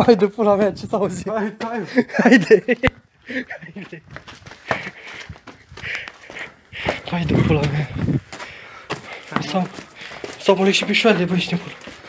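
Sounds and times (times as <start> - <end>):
man's voice: 0.0 - 4.1, 6.9 - 8.2, 9.3 - 11.9.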